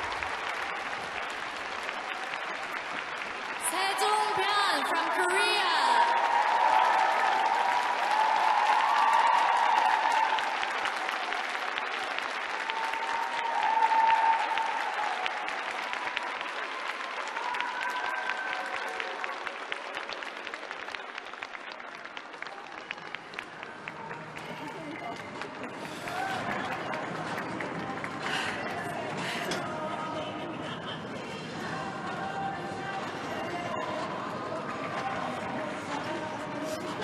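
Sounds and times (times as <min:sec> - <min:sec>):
audience applauding: 0:00.0 - 0:37.0.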